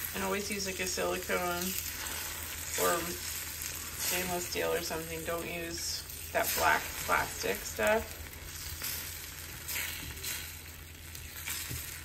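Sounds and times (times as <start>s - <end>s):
eggs sizzling in a pan: 0.0s - 12.0s.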